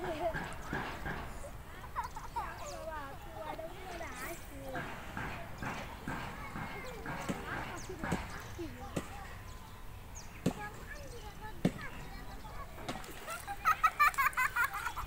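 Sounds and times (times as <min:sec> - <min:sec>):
people talking: 0:00.0 - 0:15.0.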